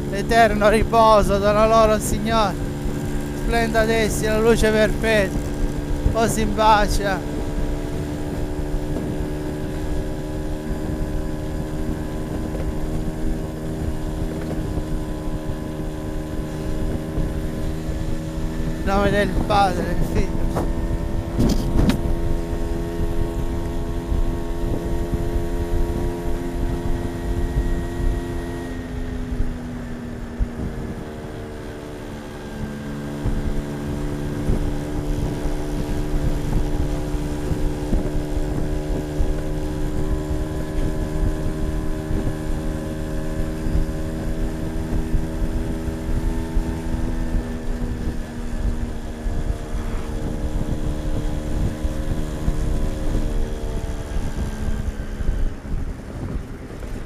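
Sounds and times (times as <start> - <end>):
small two-stroke engine running: 0.0 - 57.0
wind noise on microphone: 0.0 - 57.0.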